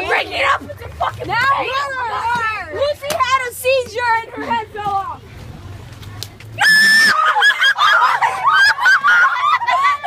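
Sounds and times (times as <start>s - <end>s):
kids laughing: 6.6s - 10.0s.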